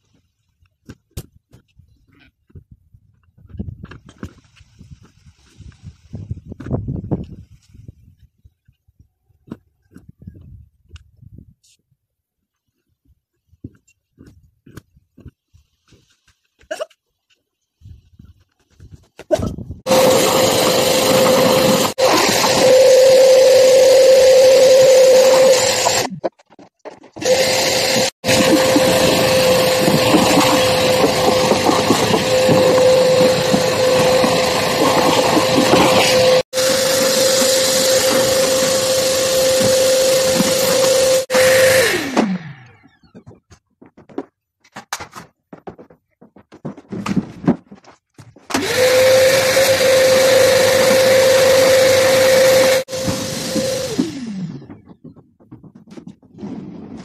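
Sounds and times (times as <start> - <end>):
vacuum cleaner motor whine: 19.9 - 26.1, 27.2 - 42.8, 48.5 - 54.8.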